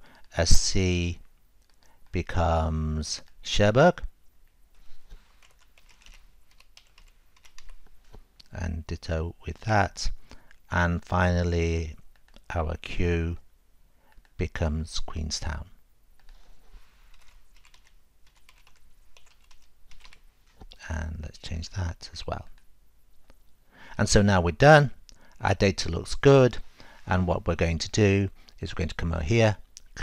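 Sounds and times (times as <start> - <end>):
keyboard typing: 5.4 - 7.8, 17.1 - 20.2.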